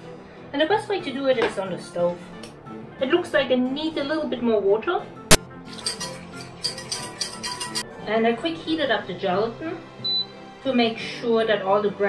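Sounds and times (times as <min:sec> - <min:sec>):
background music: 0:00.0 - 0:12.0
whisk clinking against saucepan: 0:05.7 - 0:07.8.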